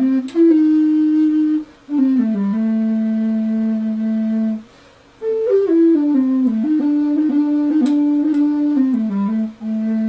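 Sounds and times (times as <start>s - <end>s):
flute holding low note: 0.0s - 10.0s.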